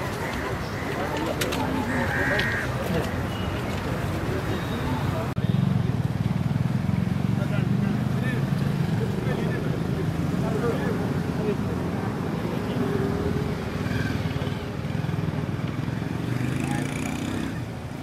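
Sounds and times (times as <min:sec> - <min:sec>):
crowd of people talking: 0:00.0 - 0:05.6, 0:07.2 - 0:17.6
low rumble of street traffic: 0:00.0 - 0:18.0.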